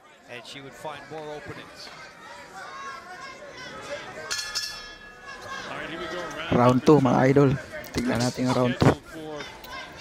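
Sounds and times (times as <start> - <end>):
crowd murmur: 0.0 - 10.0
boxing ring bell ringing: 4.3 - 5.4.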